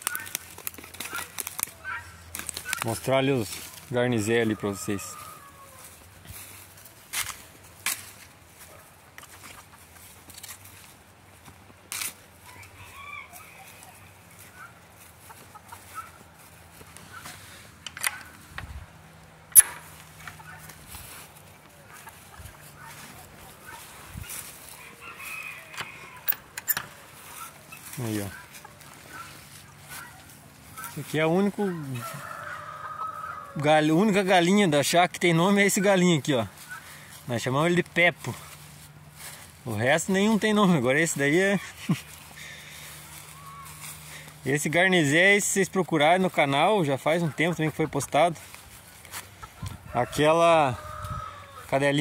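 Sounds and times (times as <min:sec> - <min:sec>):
chickens clucking: 0:01.0 - 0:07.0, 0:08.4 - 0:52.0
sharp clicks and knocks: 0:19.5 - 0:20.4.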